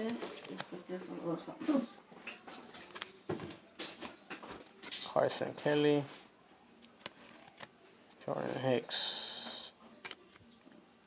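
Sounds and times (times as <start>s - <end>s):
light card rustle: 6.8s - 7.8s.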